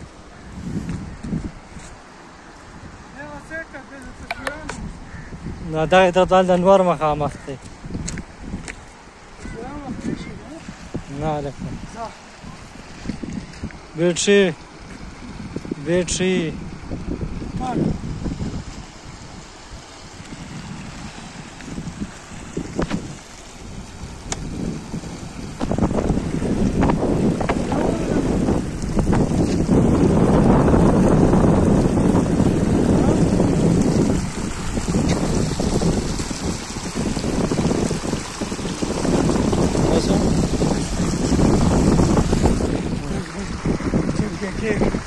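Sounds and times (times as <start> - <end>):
fast river running: 0.0 - 45.0
wind buffeting microphone: 0.0 - 45.0.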